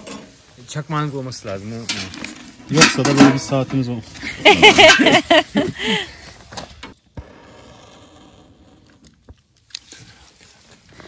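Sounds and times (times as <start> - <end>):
faint steady hiss: 0.0 - 7.0
people laughing: 4.2 - 6.1.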